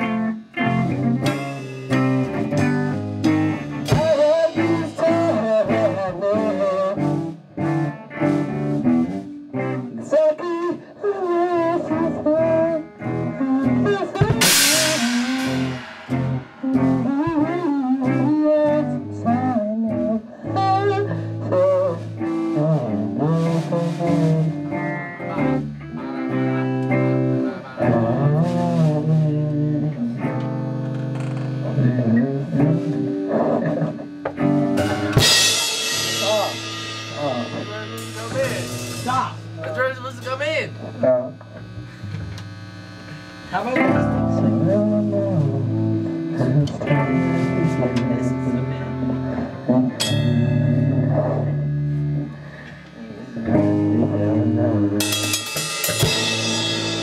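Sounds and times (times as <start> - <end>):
electric guitars playing chords: 0.0 - 57.0
person singing: 3.2 - 7.4, 9.6 - 26.5, 43.8 - 52.4, 53.0 - 55.2
cymbal crash: 14.4 - 17.2, 34.8 - 41.0, 55.0 - 57.0.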